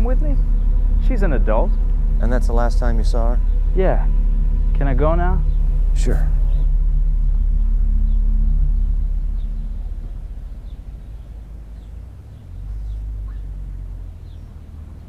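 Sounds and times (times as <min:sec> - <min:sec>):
low rumble with hum: 0:00.0 - 0:15.0.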